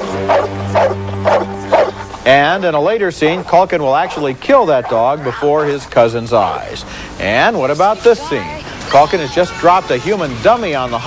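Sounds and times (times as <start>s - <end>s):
large dog barking viciously: 0.0s - 2.0s, 3.2s - 6.0s
film score music: 0.0s - 2.5s.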